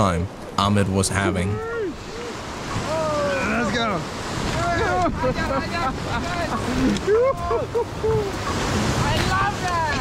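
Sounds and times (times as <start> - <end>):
whitewater rapids rushing: 0.4 - 10.0
people calling out: 1.4 - 5.4
wind buffeting microphone: 1.5 - 10.0.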